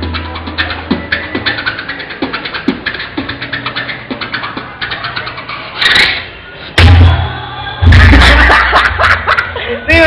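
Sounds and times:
beatboxing hi-hat clicks: 0.0s - 7.0s
beatboxed kick beats: 0.0s - 9.4s.

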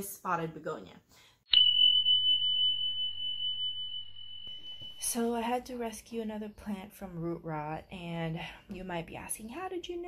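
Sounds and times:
high pure tone: 1.5s - 6.3s.

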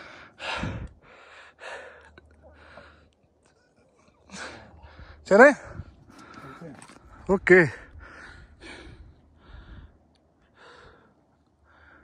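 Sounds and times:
person breathing hard: 0.0s - 3.2s, 7.8s - 12.0s.

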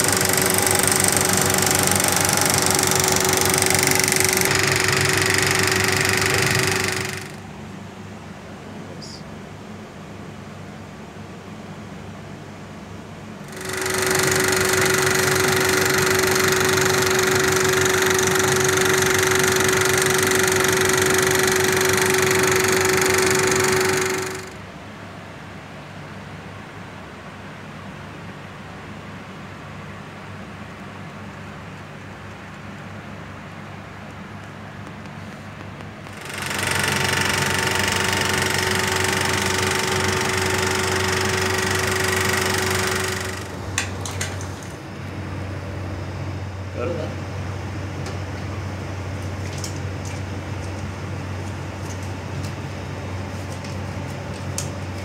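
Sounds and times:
film projector clatter and hum: 0.0s - 8.6s, 9.6s - 55.0s.

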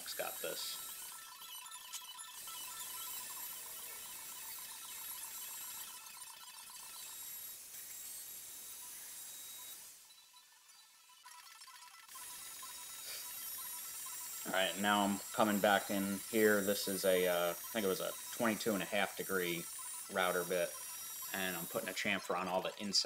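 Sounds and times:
electric router cutting wood: 0.0s - 23.0s.

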